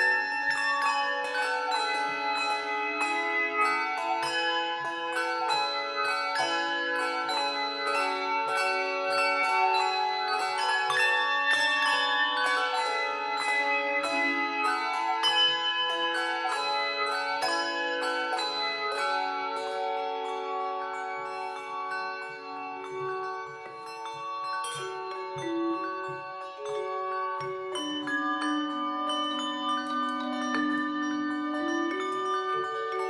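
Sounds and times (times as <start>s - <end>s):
handbell choir playing: 0.0s - 33.0s.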